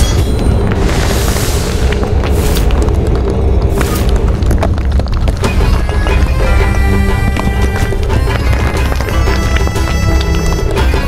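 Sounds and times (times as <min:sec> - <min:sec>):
whooshing swells: 0:00.0 - 0:04.5
deep booming rumble: 0:00.0 - 0:09.6
dramatic background music: 0:00.0 - 0:11.0.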